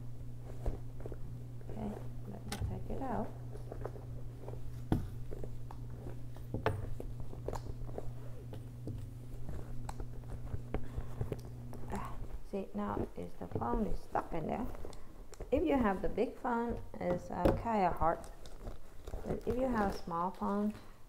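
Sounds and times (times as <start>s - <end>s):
steady low hum: 0.0s - 21.0s
soft rustling: 0.1s - 21.0s.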